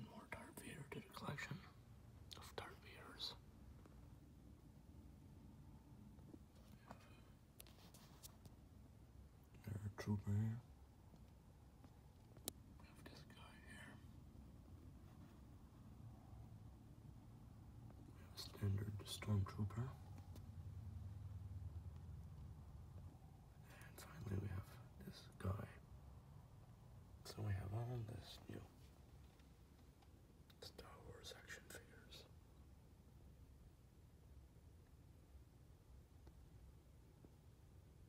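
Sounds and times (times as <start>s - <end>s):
faint whispering: 0.0s - 3.5s, 6.2s - 8.3s, 9.4s - 10.8s, 12.6s - 14.2s, 17.9s - 20.4s, 23.5s - 25.9s, 27.2s - 29.1s, 30.5s - 32.4s
low room hum: 0.0s - 38.0s.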